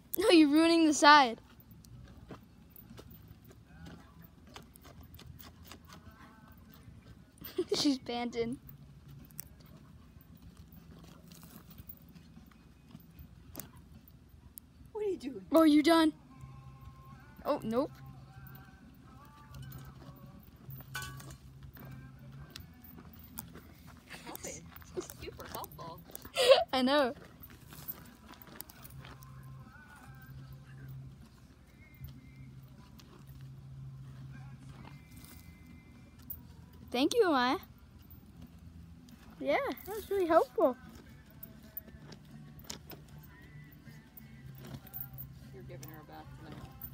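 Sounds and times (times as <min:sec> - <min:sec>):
dog paws digging in dry dirt: 0:00.1 - 0:14.4, 0:17.7 - 0:36.9.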